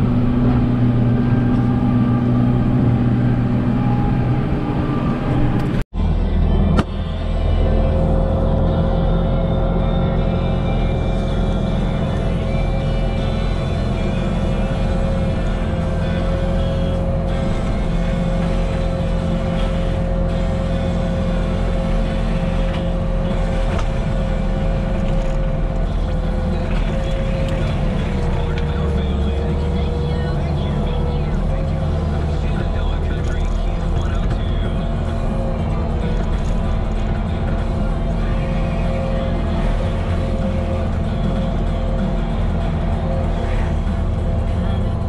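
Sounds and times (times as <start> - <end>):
diesel engine rumble: 0.0 - 45.0
hydraulic disc whine: 0.0 - 45.0.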